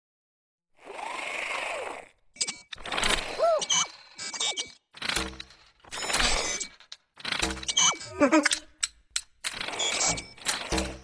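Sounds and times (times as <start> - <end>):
robot motor whirring: 0.8 - 8.6, 9.5 - 11.0
mechanical clicks and clanks: 2.4 - 11.0.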